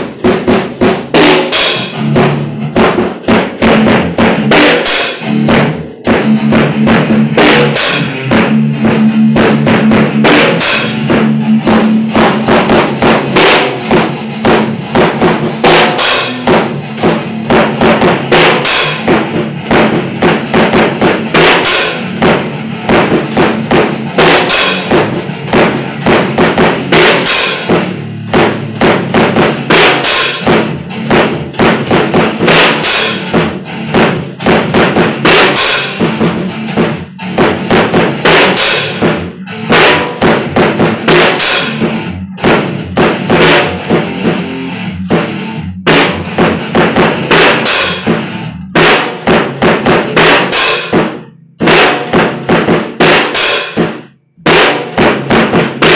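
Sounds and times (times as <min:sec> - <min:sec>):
drum kit playing: 0:00.0 - 0:55.9.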